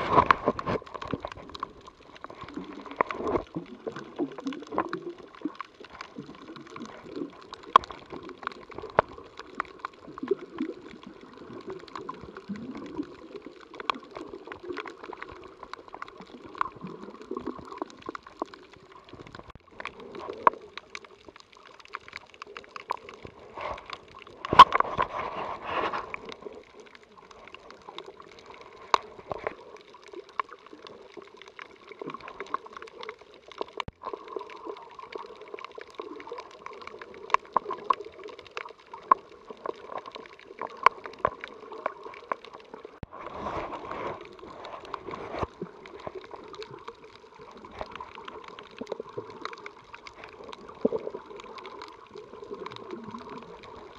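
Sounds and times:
muffled underwater water movement: 0:00.0 - 0:53.9
rush of water: 0:00.0 - 0:53.9
sharp underwater clicks and crackles: 0:00.0 - 0:53.9.

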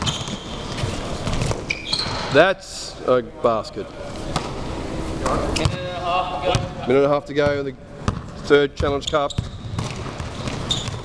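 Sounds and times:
players' voices: 0:02.2 - 0:09.4
basketball bouncing thuds: 0:07.4 - 0:11.0.

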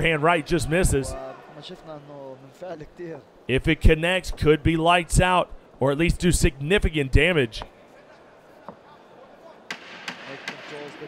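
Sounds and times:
arena crowd noise: 0:00.0 - 0:11.0
sharp slaps: 0:09.7 - 0:11.0.

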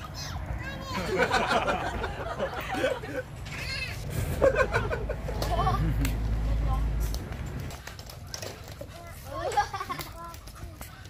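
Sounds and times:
children calling out: 0:03.4 - 0:04.2.

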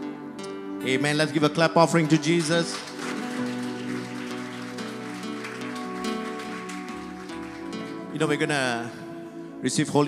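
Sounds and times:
crowd clapping: 0:01.3 - 0:09.2.

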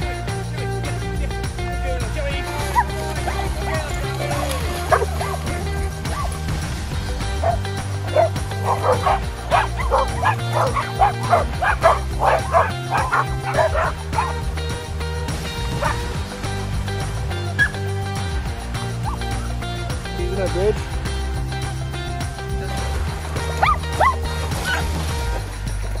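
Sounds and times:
background music: 0:00.0 - 0:26.0
dogs barking: 0:02.6 - 0:14.7, 0:15.6 - 0:16.2, 0:17.6 - 0:17.9, 0:19.0 - 0:19.6, 0:23.4 - 0:25.0.

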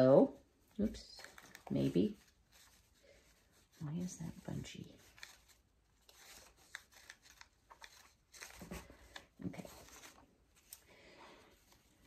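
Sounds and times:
fabric ribbon rustling: 0:00.0 - 0:12.0.

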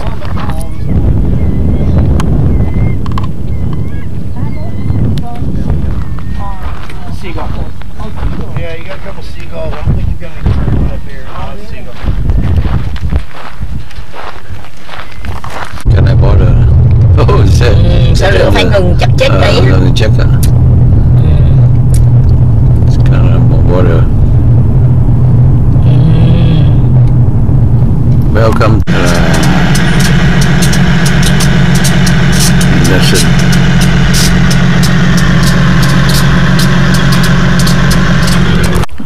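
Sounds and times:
car engine and road noise: 0:15.8 - 0:39.0
low hum with small clicks: 0:16.1 - 0:17.7, 0:20.1 - 0:39.0.

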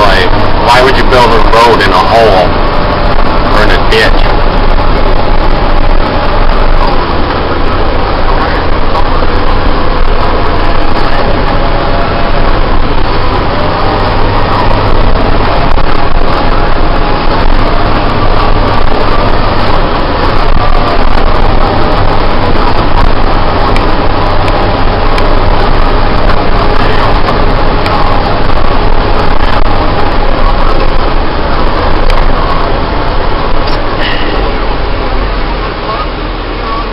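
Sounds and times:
diesel engine running loudly: 0:00.0 - 0:36.9.

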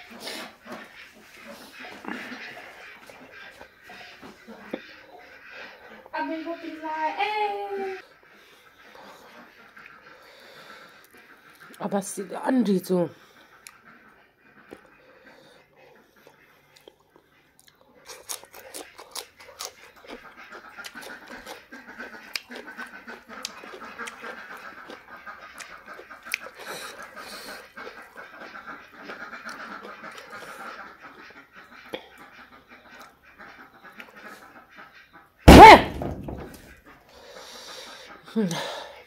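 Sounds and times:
duck chattering: 0:00.2 - 0:11.8
faint clicks of eating: 0:11.0 - 0:11.8, 0:14.6 - 0:15.0, 0:16.2 - 0:33.2, 0:33.8 - 0:34.3
sudden loud burst: 0:35.5 - 0:36.6.

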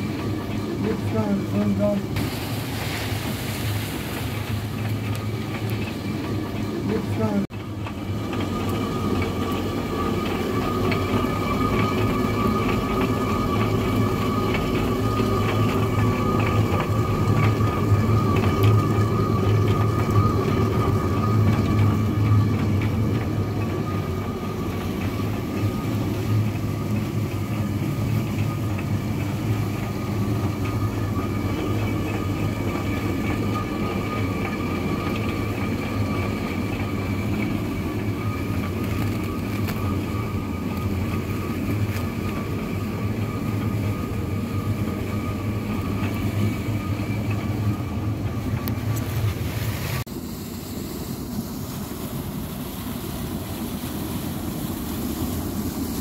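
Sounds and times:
stone mill grinding grain: 0:04.5 - 0:49.4.

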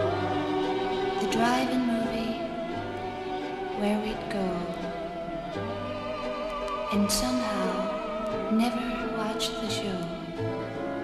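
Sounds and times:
choral singing with vibrato: 0:00.0 - 0:10.4.

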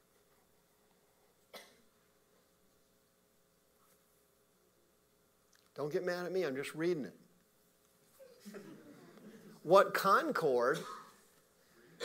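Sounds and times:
short cough: 0:01.5 - 0:01.8, 0:10.7 - 0:11.2.

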